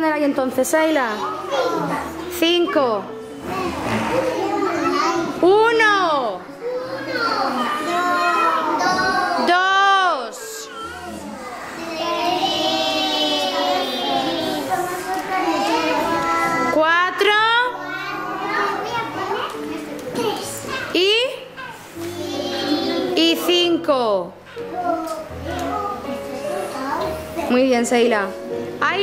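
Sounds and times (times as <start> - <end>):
young children chattering: 0.9 - 9.6, 10.2 - 16.8, 17.7 - 27.7.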